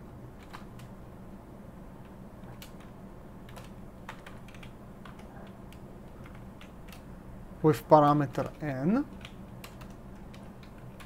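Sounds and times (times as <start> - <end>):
computer keyboard typing: 0.4 - 0.9, 2.0 - 7.1, 8.1 - 11.0.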